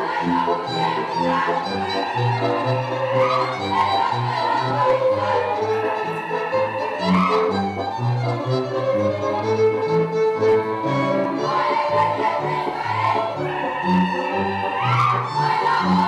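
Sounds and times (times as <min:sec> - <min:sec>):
lively folk dance music: 0:00.0 - 0:16.0.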